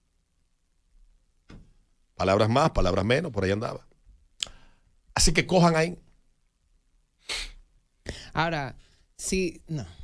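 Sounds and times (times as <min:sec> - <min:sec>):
breath burst into microphone: 0:07.2 - 0:08.3.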